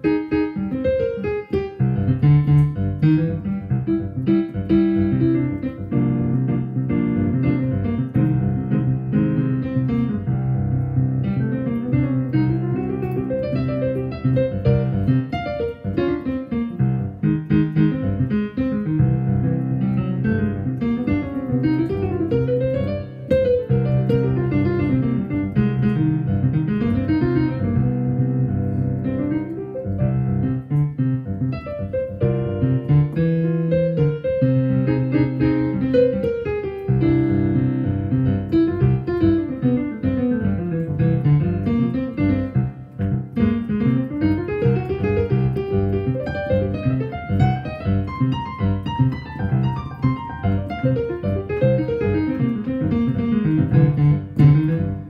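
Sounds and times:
solo piano playing: 0.0s - 55.0s.

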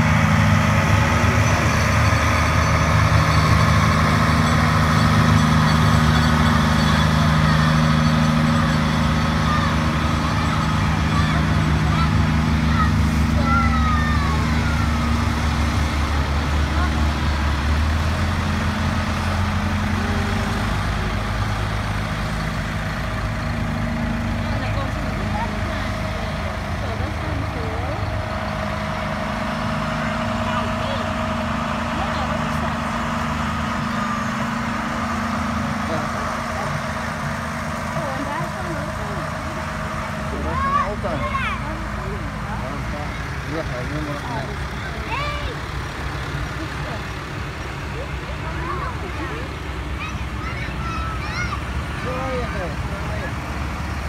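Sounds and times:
diesel engines running: 0.0s - 54.0s
voices in background: 1.1s - 54.0s.

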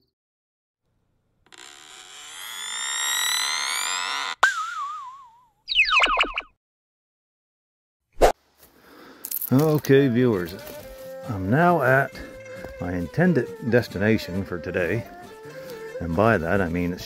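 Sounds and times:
wobbly falling chirp: 3.3s - 6.6s.

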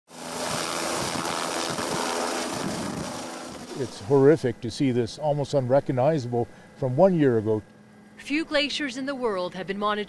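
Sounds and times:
helicopter flying close by: 0.1s - 9.8s.

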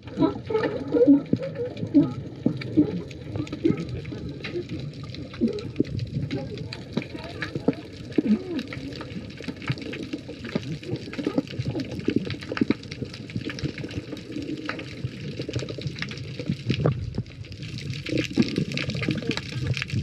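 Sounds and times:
underwater bubbling and gurgling: 0.0s - 20.0s.

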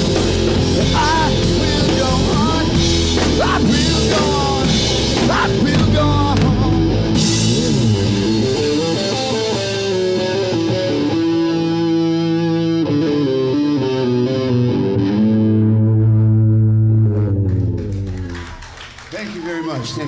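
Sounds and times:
distorted electric guitar: 0.0s - 18.3s
bass guitar: 0.0s - 18.8s.

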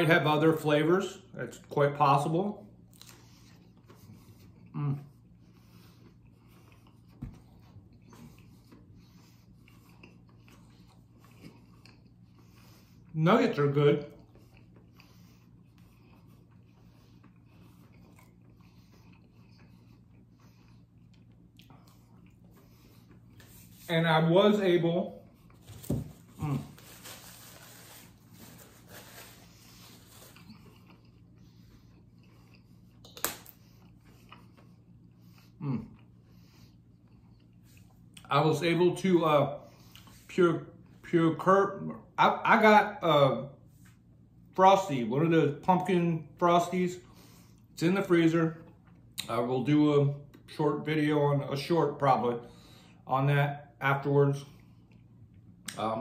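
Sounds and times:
steady low hum: 0.0s - 56.0s
faint chewing: 2.8s - 13.2s, 14.0s - 23.8s, 27.9s - 38.3s
breathing: 47.0s - 47.7s, 52.4s - 53.0s.

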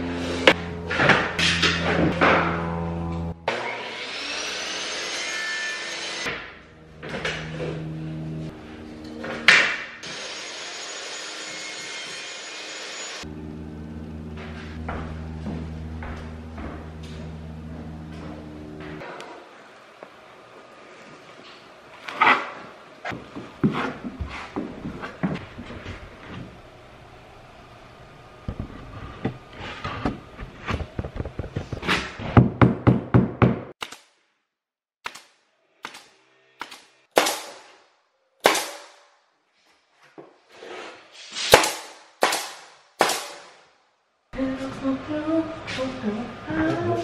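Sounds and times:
pneumatic nailer shots: 33.8s - 34.2s, 35.0s - 37.8s, 38.4s - 39.0s, 41.4s - 43.6s.

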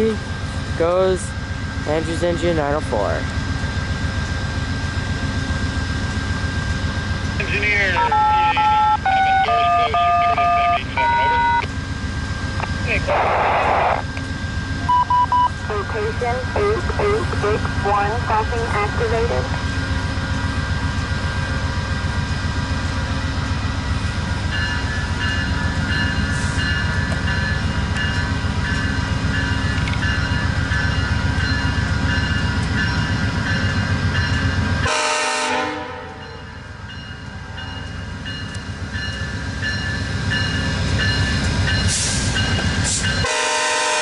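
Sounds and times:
diesel locomotive low rumble: 0.0s - 44.0s.

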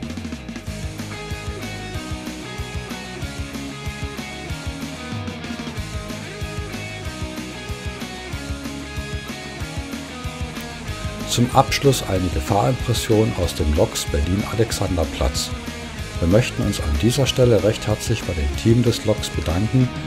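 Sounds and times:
guitar: 0.0s - 20.0s
steady drum beat: 0.0s - 20.0s.

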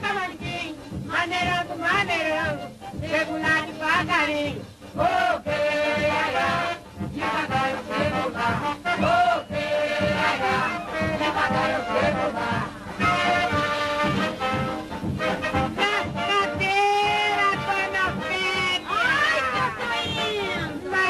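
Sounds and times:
lively band music with brass: 0.0s - 21.0s
voices: 9.0s - 13.7s, 15.8s - 21.0s.

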